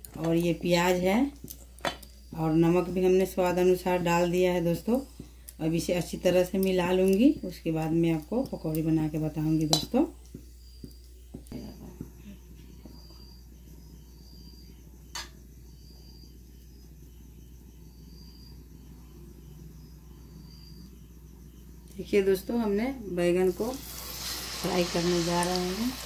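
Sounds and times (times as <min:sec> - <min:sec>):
low steady hum: 0:00.0 - 0:24.0.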